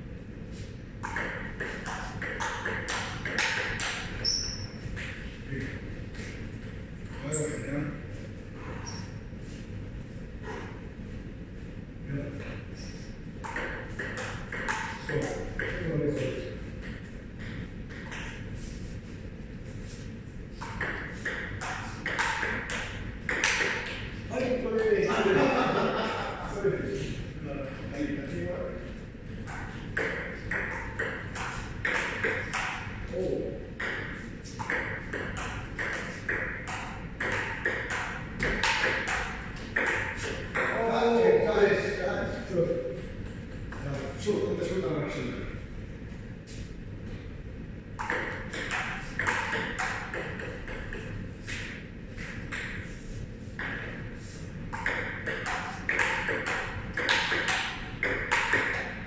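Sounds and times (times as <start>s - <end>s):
table tennis ball clicking: 54.7s - 59.0s.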